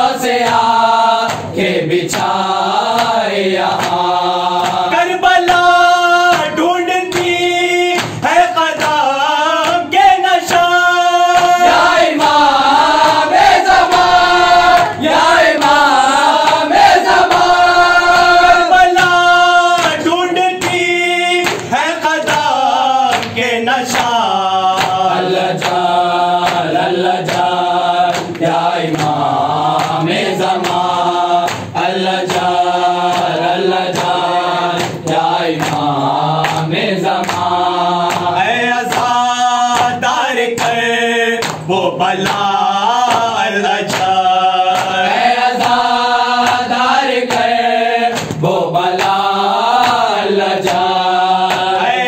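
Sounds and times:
men chanting in unison: 0.0s - 52.0s.

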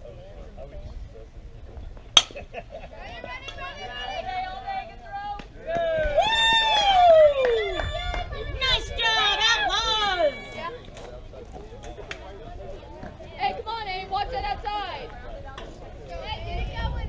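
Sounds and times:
bat hitting ball crack: 2.2s - 2.4s
people shouting and cheering: 3.2s - 11.1s.

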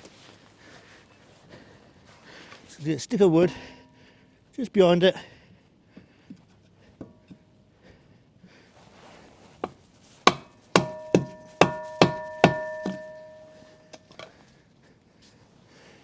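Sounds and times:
metallic ringing: 3.1s - 4.4s, 10.7s - 14.2s
hammer blows on wood: 9.6s - 13.9s.

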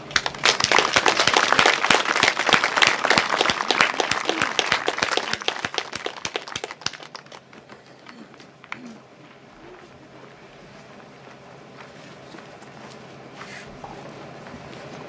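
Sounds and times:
audience applause: 0.0s - 8.9s.

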